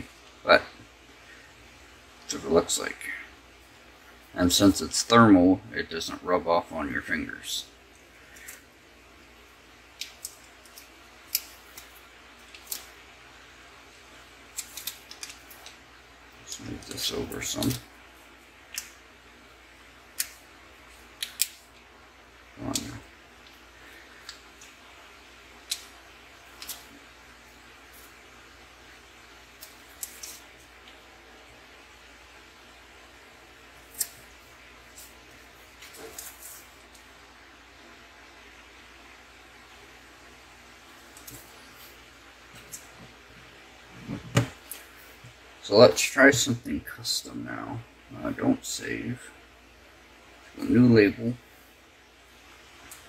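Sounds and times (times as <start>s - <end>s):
faint steady hum: 0.0s - 53.0s.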